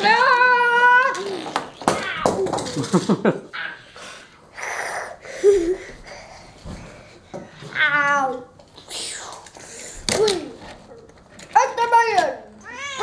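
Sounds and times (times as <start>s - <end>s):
child making vocal car noises: 7.6s - 9.4s.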